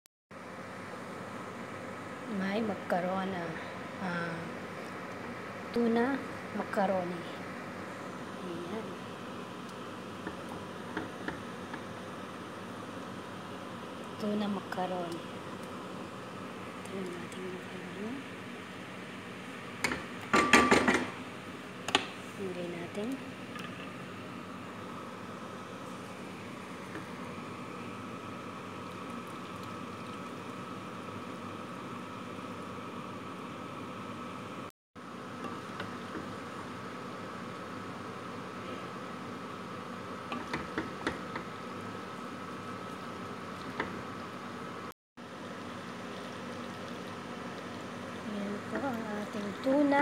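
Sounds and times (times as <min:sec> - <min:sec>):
steady hum with thin whine: 0:00.4 - 0:50.0.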